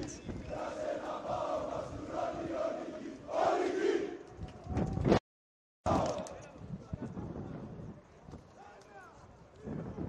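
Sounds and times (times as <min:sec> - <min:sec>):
crowd noise: 0:00.0 - 0:05.1.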